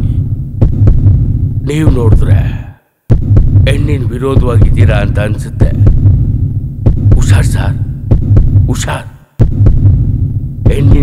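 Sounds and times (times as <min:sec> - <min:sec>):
deep throbbing pulse: 0:00.0 - 0:02.5, 0:03.1 - 0:11.0.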